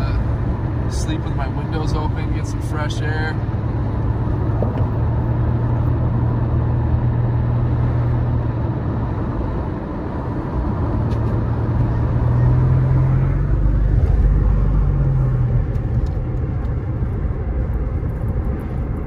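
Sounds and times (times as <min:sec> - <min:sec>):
car engine hum: 0:00.0 - 0:19.0
road and tyre noise: 0:00.0 - 0:19.0.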